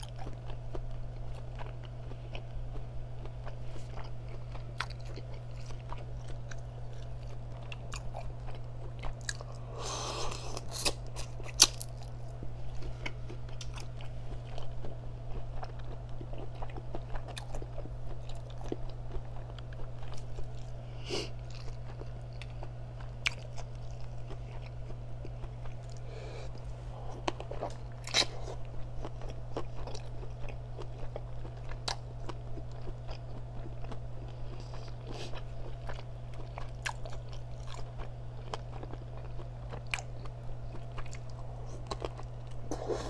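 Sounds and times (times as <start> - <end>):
close chewing and biting: 0.0 - 43.0
steady low hum: 0.0 - 43.0.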